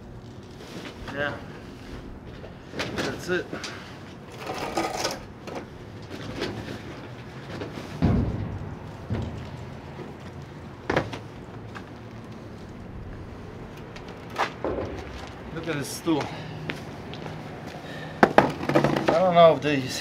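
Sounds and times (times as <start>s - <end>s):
thumps and knocks in dumpster: 7.6s - 11.2s, 14.5s - 15.4s.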